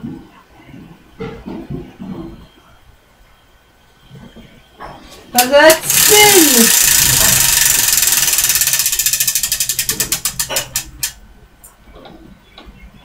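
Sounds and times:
prize wheel pointer clicking: 5.4s - 11.2s.

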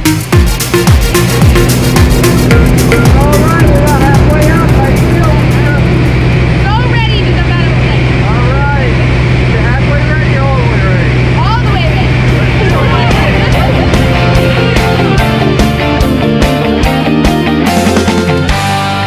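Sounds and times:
propeller engine droning: 0.0s - 18.6s.

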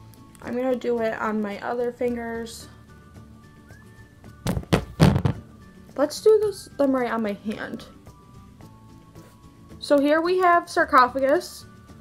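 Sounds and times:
dull thumps from handling objects: 4.3s - 5.5s.

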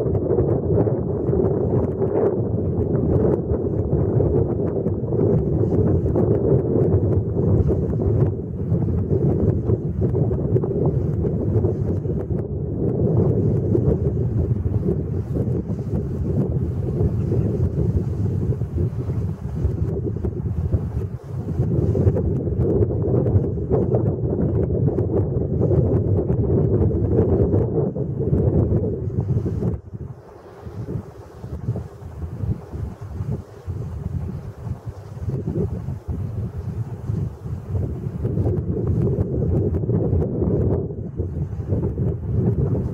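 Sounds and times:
wind buffeting microphone: 0.0s - 42.9s.

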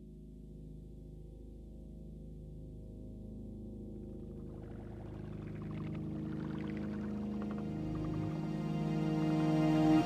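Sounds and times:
low synthesizer chord: 1.6s - 10.0s.

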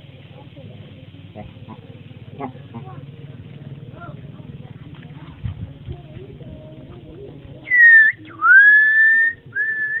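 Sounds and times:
whistled notes: 7.7s - 10.0s.

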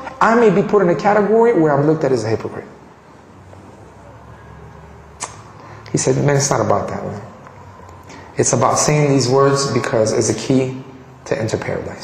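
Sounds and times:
man talking: 0.0s - 2.8s, 5.9s - 7.4s, 8.3s - 12.0s
sharp click: 5.2s - 5.5s.

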